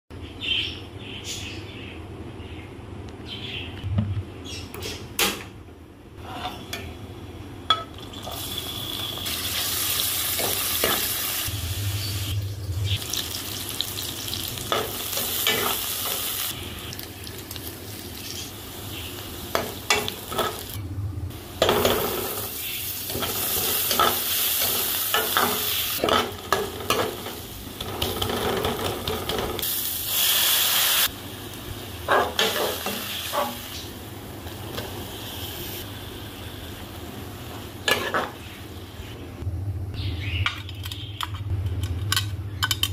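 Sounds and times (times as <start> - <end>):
steel ladle scraping a pan: 6.2 - 6.8
onions sizzling in hot oil: 8.0 - 38.6.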